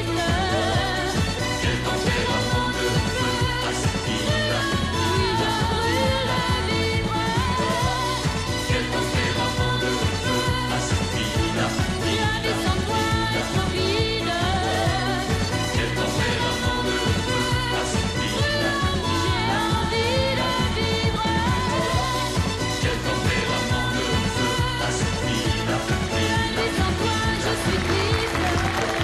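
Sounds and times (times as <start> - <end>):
pop song: 0.0 - 29.0
woman singing: 0.0 - 29.0.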